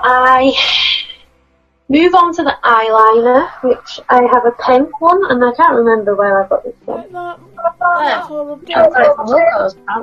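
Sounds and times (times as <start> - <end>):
voice over video call: 0.0 - 1.2, 1.9 - 10.0
women talking: 0.0 - 1.2, 1.9 - 10.0.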